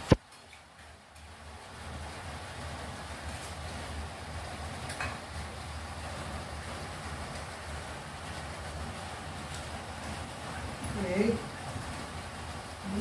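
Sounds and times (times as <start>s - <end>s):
low rumbling background noise: 0.0s - 13.0s.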